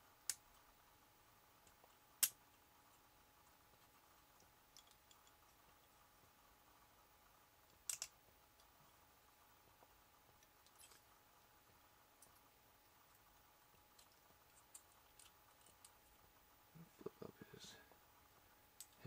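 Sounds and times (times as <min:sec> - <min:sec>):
plastic toy parts clicking: 0:07.8 - 0:08.1.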